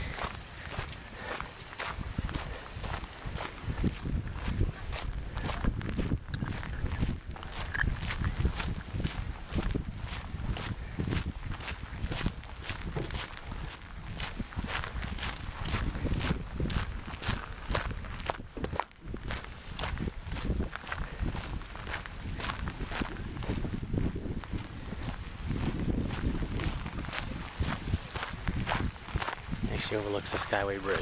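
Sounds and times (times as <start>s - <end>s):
footsteps on sandy path: 0.0s - 31.0s
wind rumble on microphone: 0.0s - 31.0s.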